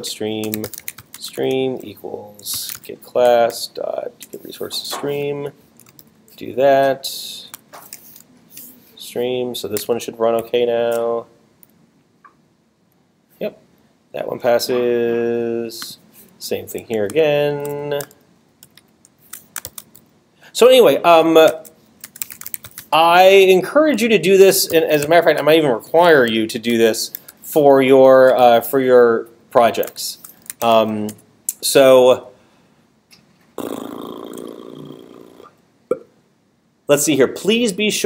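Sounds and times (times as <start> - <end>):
person's low creaky vocal sound: 33.6 - 35.6.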